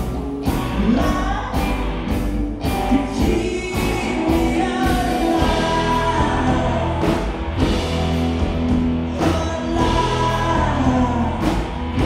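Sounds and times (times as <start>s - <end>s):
live rock band: 0.0s - 12.0s
steady drum beat: 0.0s - 12.0s
sung vocals: 0.4s - 8.0s, 8.6s - 12.0s.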